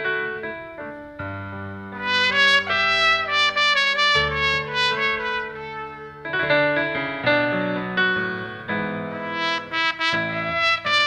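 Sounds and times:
low accompaniment: 1.5s - 11.0s
trumpet playing slow melody: 2.0s - 6.8s, 9.1s - 11.0s.

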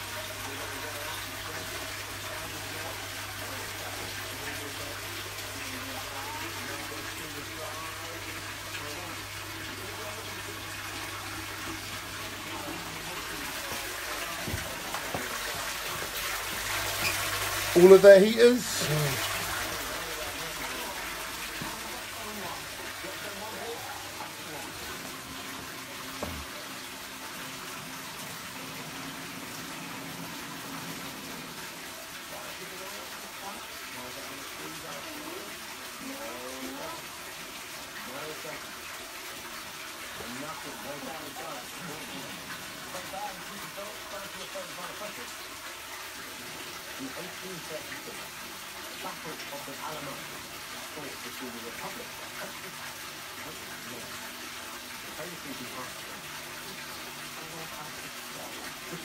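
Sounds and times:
water pouring into aquarium: 0.0s - 59.0s
knock: 26.2s - 26.5s.

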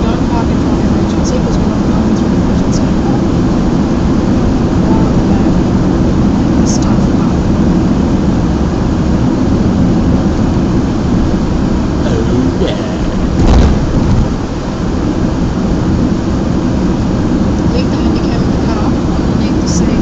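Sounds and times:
car road noise inside cabin: 0.0s - 20.0s
heavy thump: 13.2s - 14.4s.

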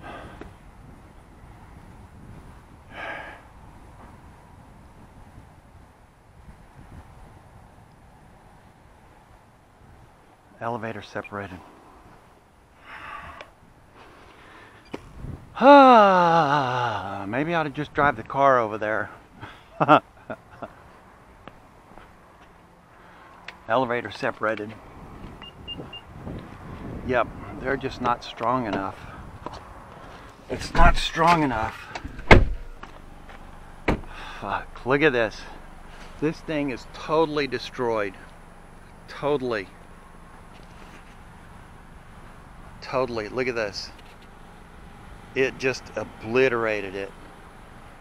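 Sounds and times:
faint wind rumble on microphone: 0.0s - 10.3s, 15.0s - 15.6s, 24.8s - 31.1s.

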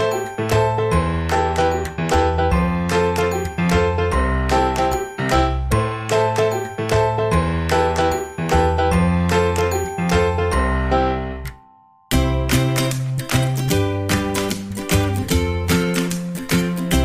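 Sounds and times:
light tune with bass line: 0.0s - 17.0s.

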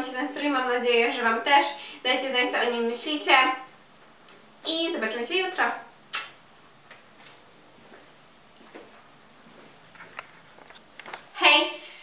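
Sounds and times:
lip smack: 6.1s - 6.4s.

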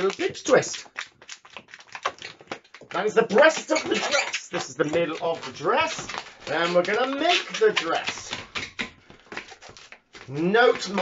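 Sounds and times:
balloon squeaking while twisted: 0.0s - 8.8s.

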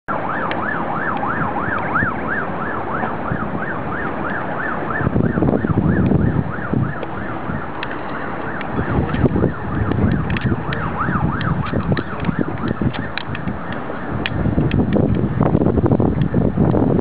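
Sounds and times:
siren yelping: 0.1s - 15.6s
low rumbling noise: 0.1s - 17.0s.

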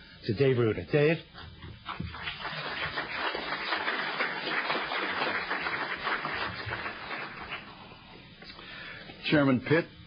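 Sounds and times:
audience applauding: 1.8s - 8.0s.

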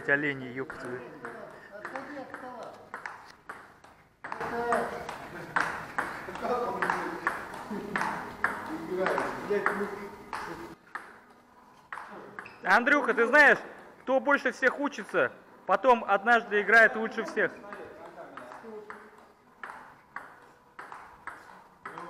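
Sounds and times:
table tennis ball clicking: 0.6s - 11.2s, 11.8s - 13.2s, 17.3s - 22.0s.

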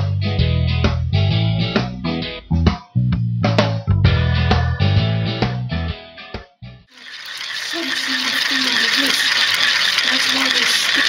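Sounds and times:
electric motor rattling: 6.9s - 11.0s.

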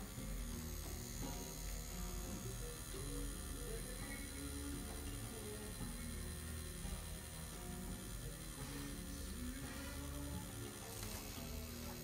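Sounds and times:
tattoo machine humming: 0.0s - 12.0s.

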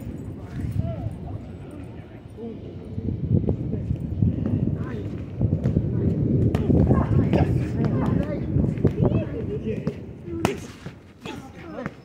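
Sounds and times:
dense low rumble: 0.0s - 10.4s.

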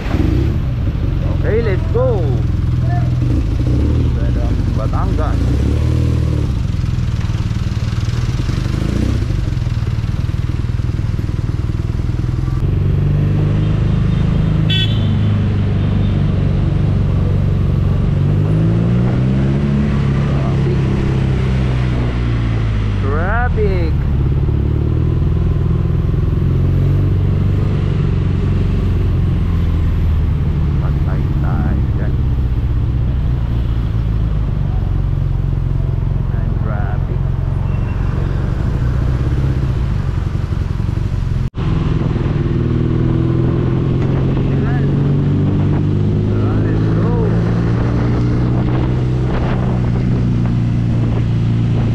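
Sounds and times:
motorcycle engine revving: 0.0s - 51.9s.

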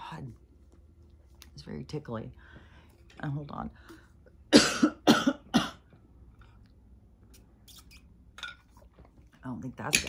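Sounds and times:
woman coughing: 4.5s - 5.9s.

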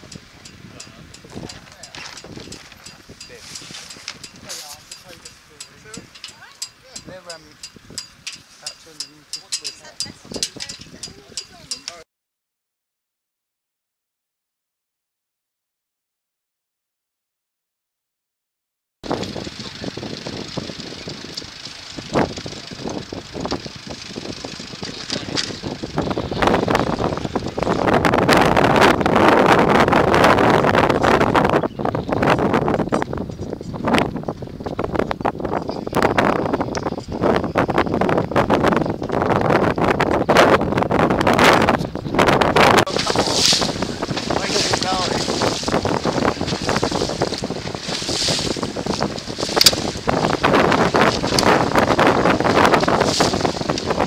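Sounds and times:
wind buffeting microphone: 0.0s - 12.0s, 19.0s - 54.0s.

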